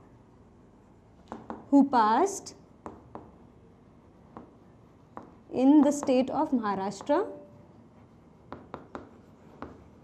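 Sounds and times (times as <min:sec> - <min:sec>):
chalk tapping on blackboard: 0:01.3 - 0:01.7, 0:02.8 - 0:03.4, 0:04.3 - 0:06.3, 0:08.0 - 0:10.0.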